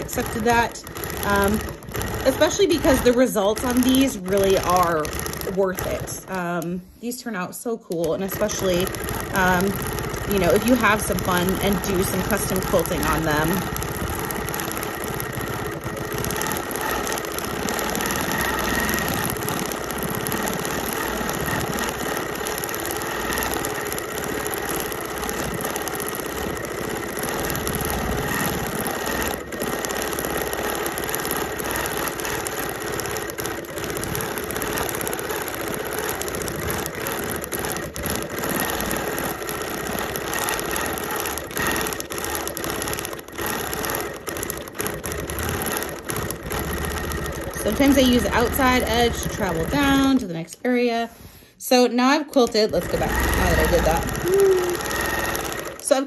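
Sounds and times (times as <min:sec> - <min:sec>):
sewing machine running: 0:00.0 - 0:51.5, 0:52.3 - 0:56.0.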